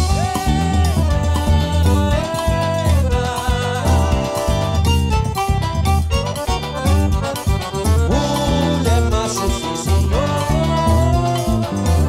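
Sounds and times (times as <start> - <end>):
bass drum beat: 0.0 - 12.0
sliding melody notes: 3.4 - 12.0.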